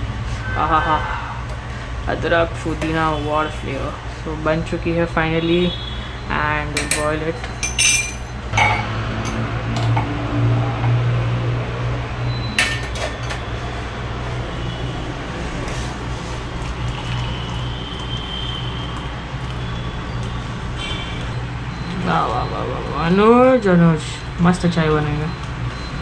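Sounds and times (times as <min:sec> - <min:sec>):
metal clink: 0:07.6 - 0:08.9
tea pouring through strainer: 0:15.9 - 0:19.6.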